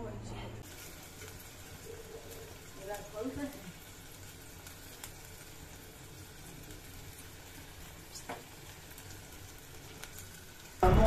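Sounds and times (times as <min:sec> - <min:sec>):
sizzling hiss from a pot: 0:00.6 - 0:11.0.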